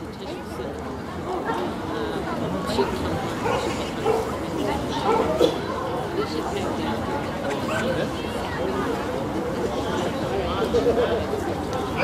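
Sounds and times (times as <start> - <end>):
crowd chatter: 0.0 - 12.0
dog barking: 3.4 - 4.3.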